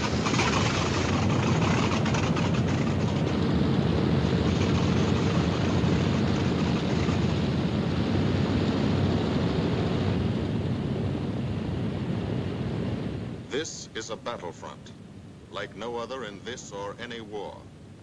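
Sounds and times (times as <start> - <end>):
propeller plane engines droning: 0.0 - 18.0.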